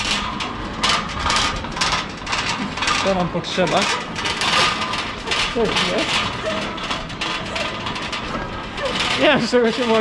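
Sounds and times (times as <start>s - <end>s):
metal trolley rattling on concrete: 0.0s - 10.0s.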